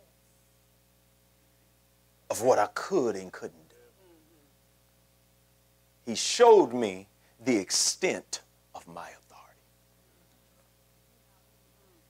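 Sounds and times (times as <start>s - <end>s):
faint steady hum: 0.0s - 12.0s
man speaking: 2.3s - 4.0s, 6.1s - 9.6s.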